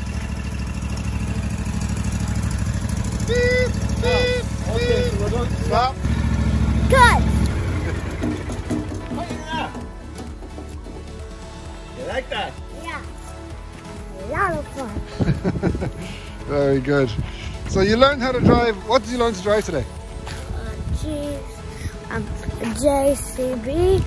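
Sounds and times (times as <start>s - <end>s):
ride-on mower engine running: 0.0s - 20.9s.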